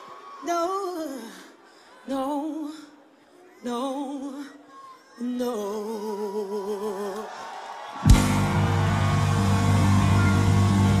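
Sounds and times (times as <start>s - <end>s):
live band holding final chord: 8.1s - 11.0s
loud band hit: 8.1s - 11.0s.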